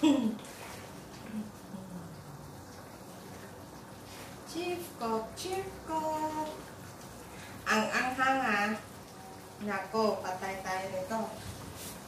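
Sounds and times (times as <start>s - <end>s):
woman singing quietly: 4.5s - 6.6s.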